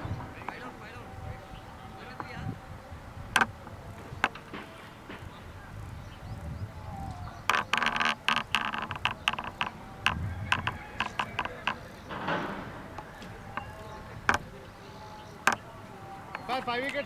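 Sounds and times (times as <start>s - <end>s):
sharp clicks and taps: 3.4s - 5.3s, 7.4s - 14.6s, 15.4s - 15.7s.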